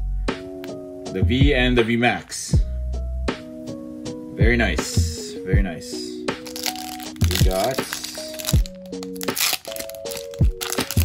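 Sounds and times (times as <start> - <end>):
background music with drum beat: 0.0 - 6.5, 7.1 - 9.4
foil pack crinkling and tearing: 6.4 - 11.0.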